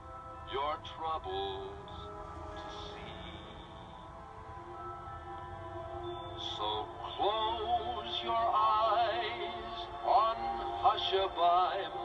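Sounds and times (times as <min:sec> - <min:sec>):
soft orchestral accompaniment: 0:00.0 - 0:12.0
man singing a lullaby: 0:00.4 - 0:04.2, 0:06.4 - 0:12.0.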